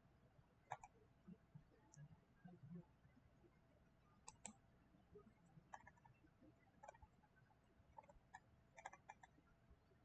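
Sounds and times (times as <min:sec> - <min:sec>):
computer mouse clicks: 0:00.7 - 0:01.0, 0:04.2 - 0:04.6, 0:05.7 - 0:06.1, 0:06.8 - 0:07.1, 0:08.0 - 0:09.4.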